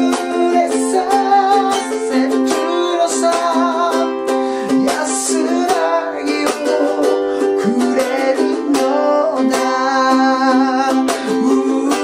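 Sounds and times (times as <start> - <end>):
man singing: 0.0 - 12.0
ukulele strumming: 0.0 - 12.0.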